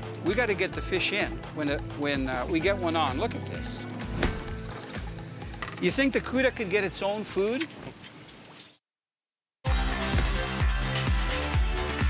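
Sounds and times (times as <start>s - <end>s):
background music: 0.0s - 7.3s, 9.7s - 12.0s.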